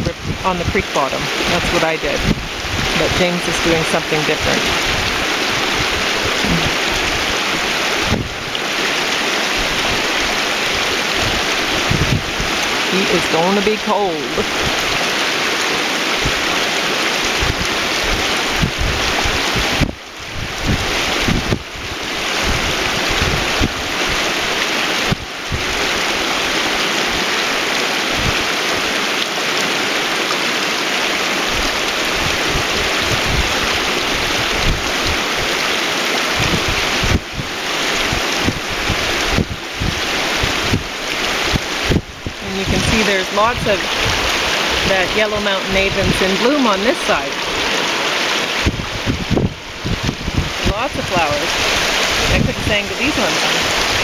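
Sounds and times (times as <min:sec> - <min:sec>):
creek rushing over stones: 0:00.0 - 0:54.0
wind rumbling on microphone: 0:00.0 - 0:54.0.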